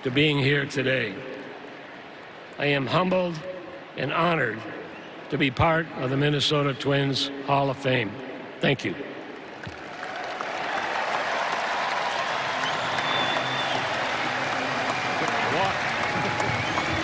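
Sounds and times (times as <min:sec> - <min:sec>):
crowd applauding: 0:09.6 - 0:17.0.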